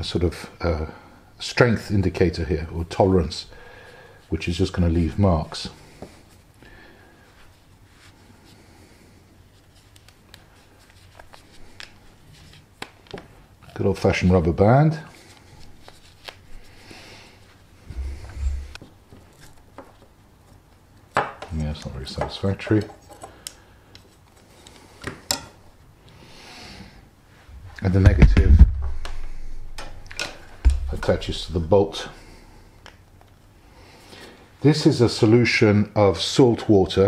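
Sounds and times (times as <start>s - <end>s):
faint rustling of cotton wool: 4.2s - 19.6s.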